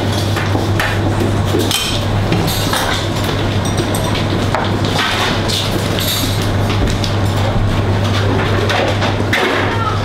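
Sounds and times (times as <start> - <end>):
steady low hum: 0.0 - 10.0
utensils and dishes clinking: 0.0 - 10.0.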